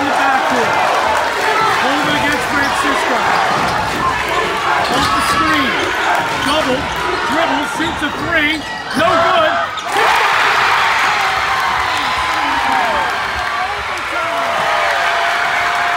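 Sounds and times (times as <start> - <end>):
crowd shouting and yelling: 0.0 - 15.9.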